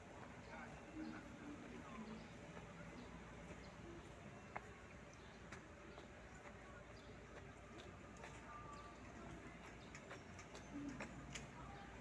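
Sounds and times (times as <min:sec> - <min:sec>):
footsteps on concrete: 0:00.0 - 0:12.0.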